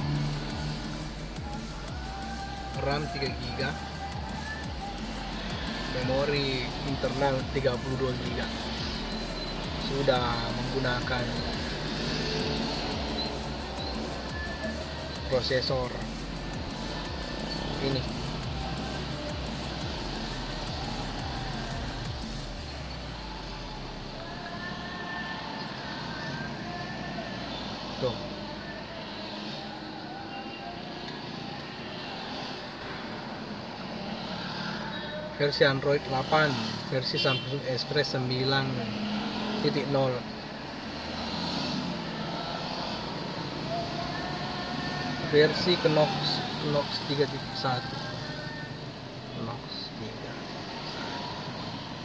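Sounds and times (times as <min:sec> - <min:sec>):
background music: 0:00.0 - 0:52.0
traffic noise inside car: 0:00.0 - 0:52.0.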